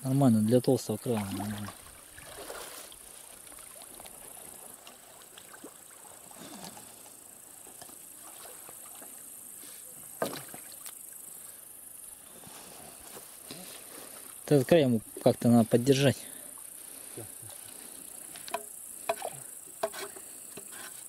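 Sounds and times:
water sloshing around wading man: 0:00.9 - 0:11.6.

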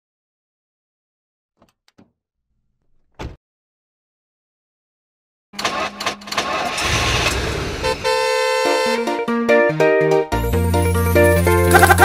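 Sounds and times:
car engine starting: 0:05.6 - 0:08.9.

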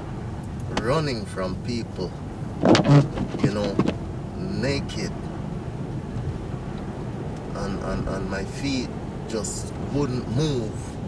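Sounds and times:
low steady rumble: 0:00.0 - 0:11.0.

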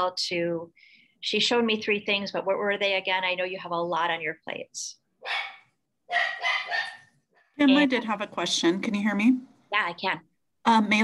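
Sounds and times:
dog barking: 0:05.2 - 0:07.2.

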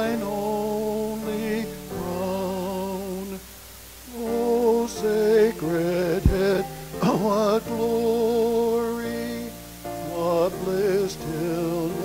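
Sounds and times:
slow hymn singing: 0:00.0 - 0:12.0.

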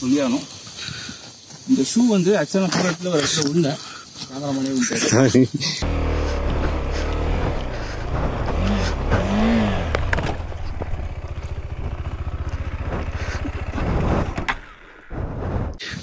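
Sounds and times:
motorcycle knocking and scraping rocks: 0:05.8 - 0:15.4
motorcycle engine revving: 0:05.8 - 0:15.8.

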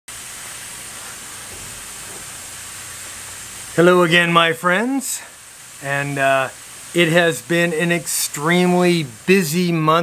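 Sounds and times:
steady high-pitched hiss: 0:00.1 - 0:10.0.

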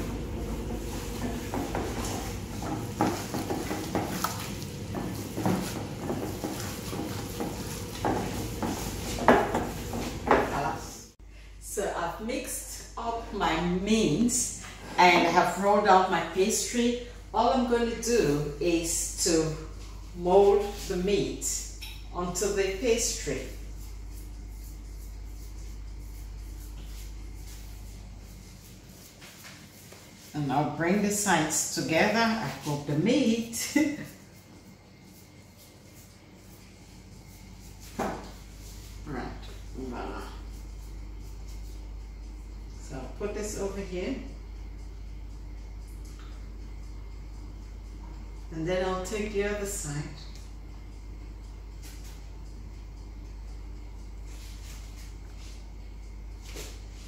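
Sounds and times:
hands kneading minced meat: 0:00.0 - 0:10.7
low steady hum: 0:00.0 - 0:57.0.

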